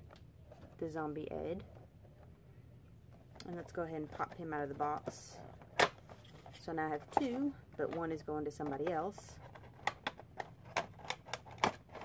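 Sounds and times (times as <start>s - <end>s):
sharp clicks and taps on packaging: 9.4s - 12.0s.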